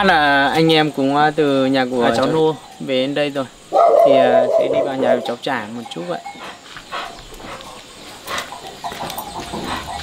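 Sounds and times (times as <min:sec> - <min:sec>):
outdoor background noise: 0:00.0 - 0:10.0
dog-like animal calls: 0:03.7 - 0:05.4.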